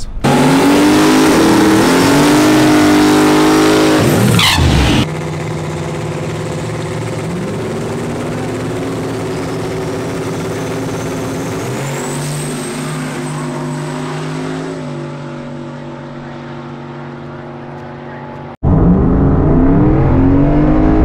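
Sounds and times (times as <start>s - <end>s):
car engine revving burnout: 0.2s - 21.0s.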